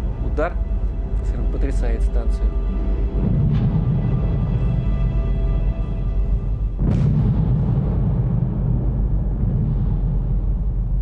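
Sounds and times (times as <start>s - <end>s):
dark droning music: 0.0s - 11.0s
deep boom with low rumble: 3.2s - 11.0s.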